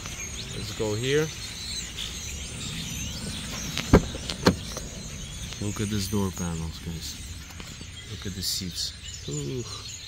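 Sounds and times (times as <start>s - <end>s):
faint bird chirps: 0.0s - 10.0s
car door latch click: 3.7s - 4.9s.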